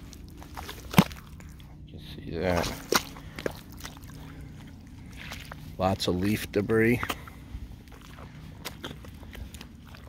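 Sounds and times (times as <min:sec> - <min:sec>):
footsteps squelching in mud: 0:00.0 - 0:10.0
steady low rumble: 0:00.0 - 0:10.0.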